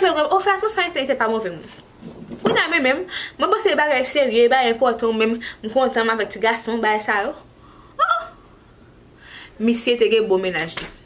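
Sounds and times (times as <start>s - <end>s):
woman speaking: 0.0s - 1.8s, 2.4s - 8.4s, 9.6s - 11.0s
woman's high exclamation: 8.0s - 8.4s.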